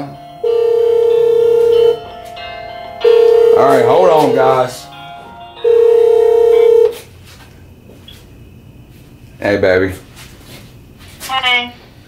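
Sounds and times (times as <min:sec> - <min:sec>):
ringtone melody: 0:00.0 - 0:07.0
phone ringtone held tone: 0:00.0 - 0:07.1.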